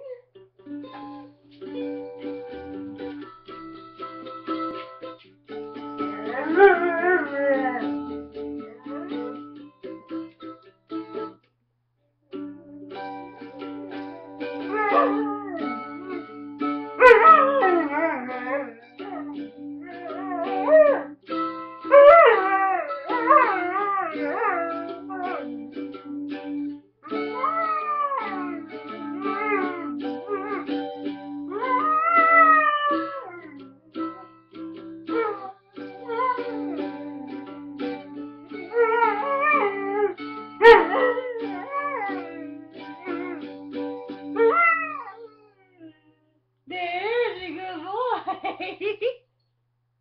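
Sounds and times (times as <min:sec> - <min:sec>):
mandolin plucking: 0:00.0 - 0:11.5, 0:12.3 - 0:45.8
dog howling: 0:06.0 - 0:09.4, 0:14.6 - 0:16.2, 0:17.0 - 0:21.1, 0:21.9 - 0:25.6, 0:27.1 - 0:30.7, 0:31.5 - 0:34.2, 0:35.1 - 0:37.1, 0:38.6 - 0:43.5, 0:44.4 - 0:46.2.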